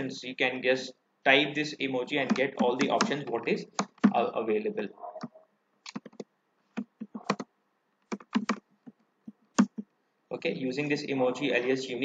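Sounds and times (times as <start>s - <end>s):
computer keyboard keys clicking: 2.2s - 3.2s, 3.8s - 4.2s, 5.8s - 9.9s.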